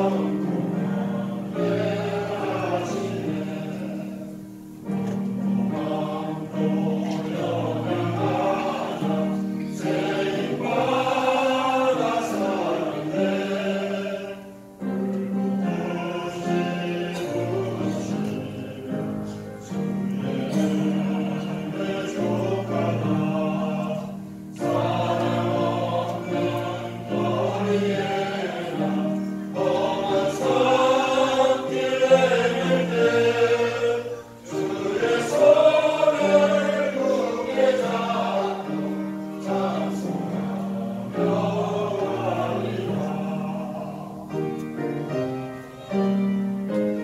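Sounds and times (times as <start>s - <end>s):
group singing a hymn: 0.0s - 47.0s.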